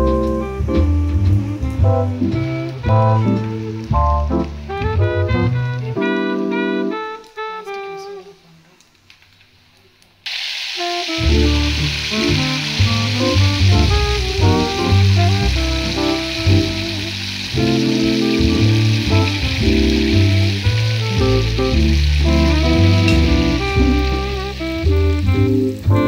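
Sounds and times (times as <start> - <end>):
oil sizzling: 0.0 - 7.6, 10.2 - 26.0
background music: 0.0 - 8.4, 11.2 - 26.0.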